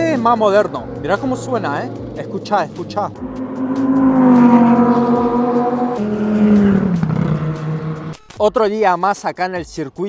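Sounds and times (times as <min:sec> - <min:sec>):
sports car engine driving: 0:00.0 - 0:08.3.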